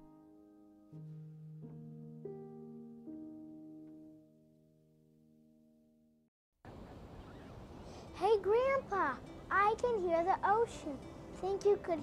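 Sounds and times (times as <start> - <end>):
held music chord: 0.0 - 6.1.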